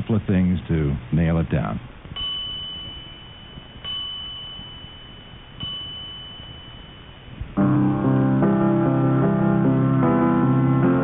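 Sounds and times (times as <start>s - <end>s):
high bell-like chime tones: 2.2s - 7.4s
piano music: 7.6s - 11.0s.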